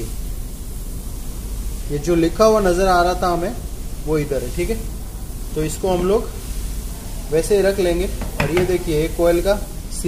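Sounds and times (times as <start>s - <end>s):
room hum and hiss: 0.0s - 10.0s.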